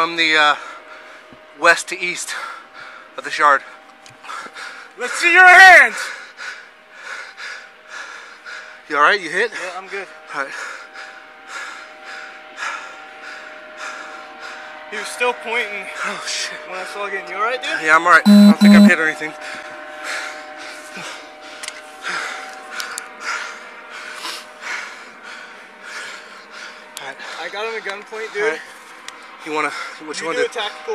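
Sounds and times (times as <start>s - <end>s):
man breathing heavily: 0.6s - 1.5s, 2.4s - 3.2s, 4.2s - 5.0s, 6.0s - 8.9s, 10.1s - 14.9s, 19.5s - 27.6s
faint steady hum: 18.3s - 19.0s.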